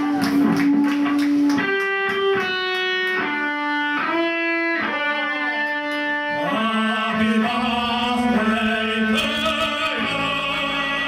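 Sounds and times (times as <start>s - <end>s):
electric guitar slow melody: 0.0s - 11.0s
live rock band playing: 0.0s - 11.0s
person singing: 4.8s - 11.0s.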